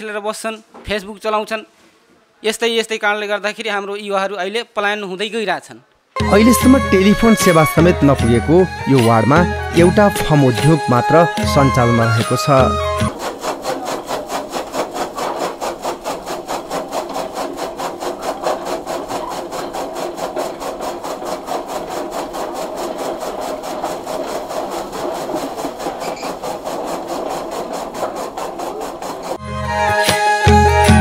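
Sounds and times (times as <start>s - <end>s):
chaff cutter chopping stalks: 10.6s - 29.4s.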